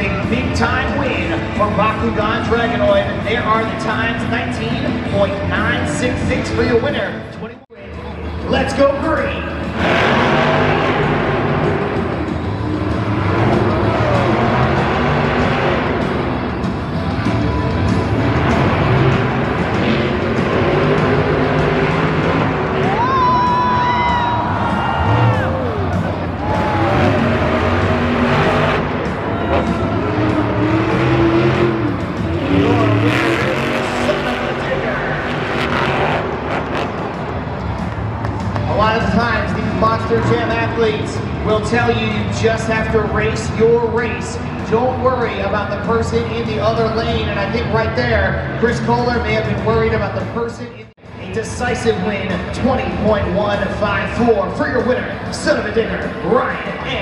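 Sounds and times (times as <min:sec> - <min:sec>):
monster truck engines racing: 0:00.0 - 0:57.0.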